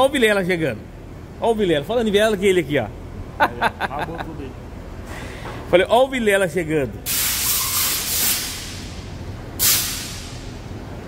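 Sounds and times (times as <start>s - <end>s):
loud hiss of rushing air: 7.1s - 10.7s.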